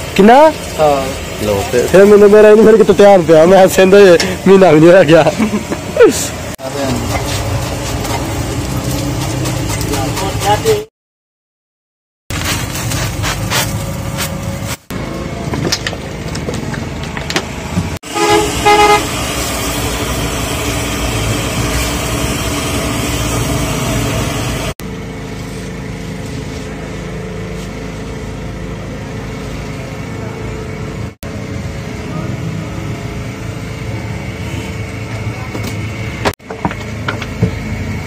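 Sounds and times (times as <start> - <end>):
busy street noise: 12.4 - 24.1, 24.9 - 38.0
vehicle horn tooting: 18.0 - 19.2.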